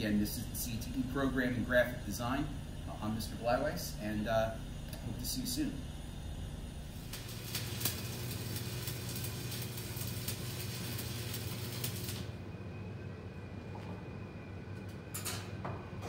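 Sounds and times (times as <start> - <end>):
welding arc crackling: 0.0 - 12.4
low hum: 0.0 - 16.0.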